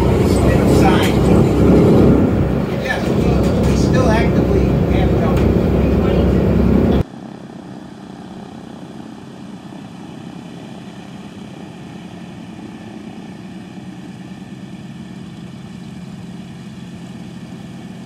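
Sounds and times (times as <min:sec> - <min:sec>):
propeller aircraft engines rumbling: 0:00.0 - 0:18.0.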